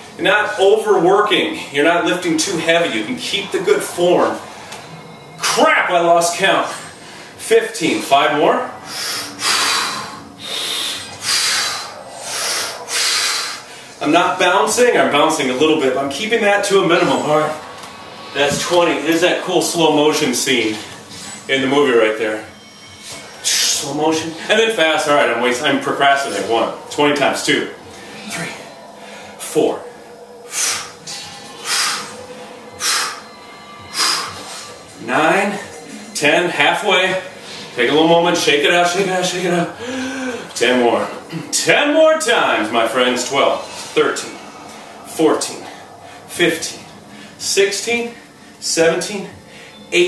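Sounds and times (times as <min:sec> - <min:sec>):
faint music: 0:00.0 - 0:50.0
man breathing hard: 0:08.8 - 0:14.0, 0:27.8 - 0:34.8, 0:39.8 - 0:40.6.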